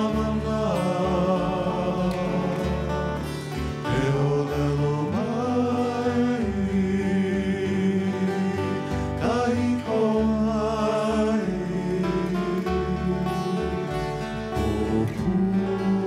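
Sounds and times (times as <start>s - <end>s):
acoustic guitar: 0.0s - 16.0s
men singing: 0.0s - 16.0s
ukulele: 0.0s - 16.0s
upright bass: 0.0s - 16.0s.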